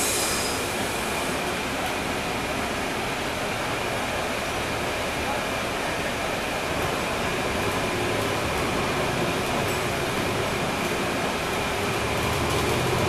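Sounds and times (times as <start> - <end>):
bus diesel engine droning: 0.0 - 13.0
road and cabin noise: 0.0 - 13.0.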